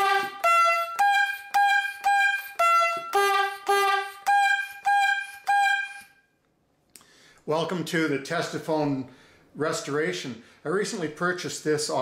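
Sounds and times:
bulb horn notes: 0.0s - 6.2s.

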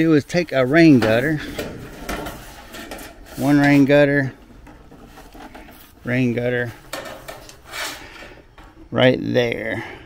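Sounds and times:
gutter scraping against wood: 0.0s - 9.0s.

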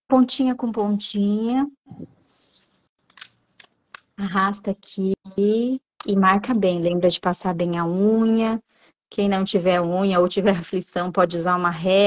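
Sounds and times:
paper sliding and rustling: 2.2s - 3.3s.

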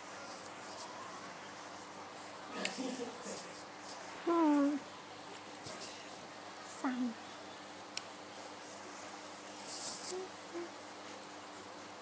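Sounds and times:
woman humming: 4.3s - 4.8s, 10.1s - 10.8s.

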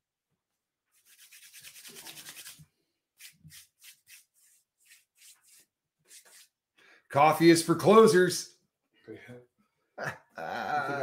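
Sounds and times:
faint rubbing noise: 0.9s - 2.6s, 3.2s - 6.6s.

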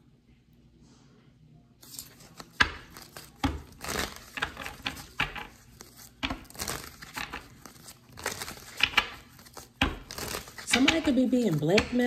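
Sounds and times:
cards being shuffled: 1.8s - 12.0s.

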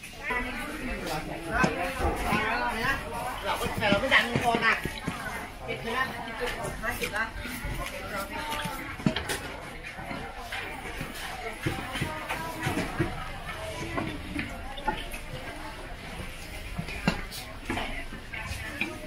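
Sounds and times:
indistinct voices: 0.0s - 19.0s.

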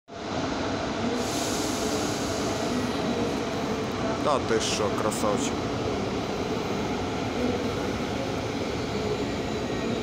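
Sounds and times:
electric train rumble: 0.1s - 10.0s
train hiss: 1.1s - 5.4s.

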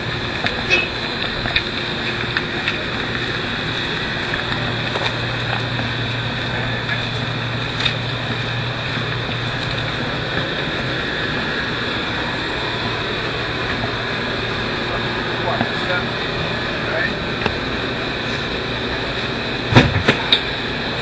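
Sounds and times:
boat engine idling: 0.0s - 21.0s.

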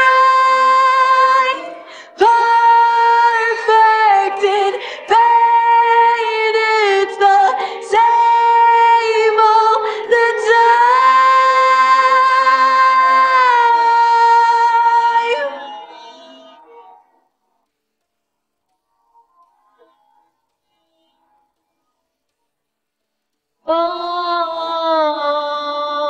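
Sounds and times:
woman singing long notes: 0.0s - 16.0s, 23.6s - 26.0s.

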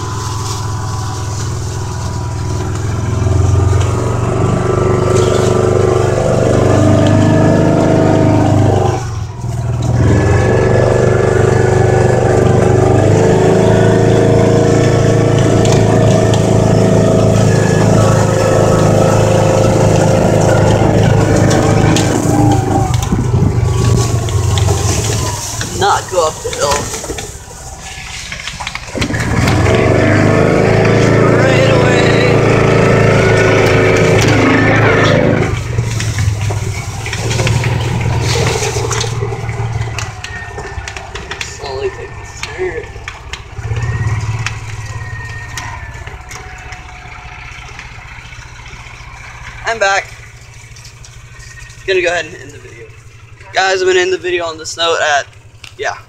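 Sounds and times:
utility vehicle engine running: 0.0s - 56.0s.

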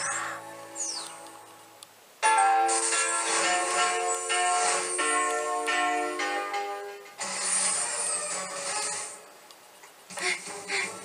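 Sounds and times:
jingle music: 2.2s - 7.1s.

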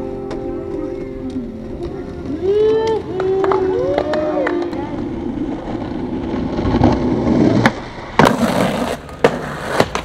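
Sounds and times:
skateboard rolling on stone paving: 0.0s - 10.0s
skateboard clacks: 0.2s - 10.0s.

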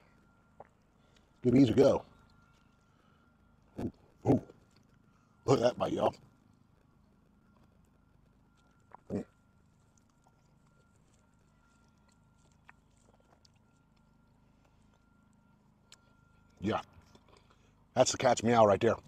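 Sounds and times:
man chewing food: 0.0s - 5.4s, 6.1s - 17.9s
faint steady high tone: 0.0s - 19.0s.

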